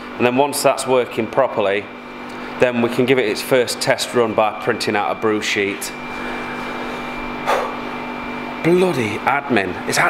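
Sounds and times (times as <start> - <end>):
steady machine hum: 0.0 - 10.0.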